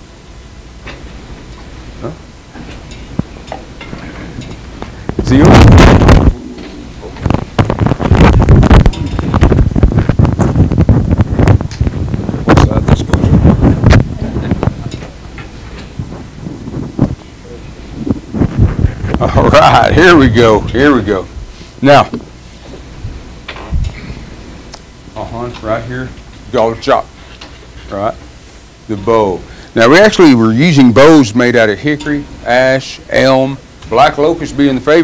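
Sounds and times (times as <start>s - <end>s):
microphone rubbing against shirt: 4.0s - 19.6s.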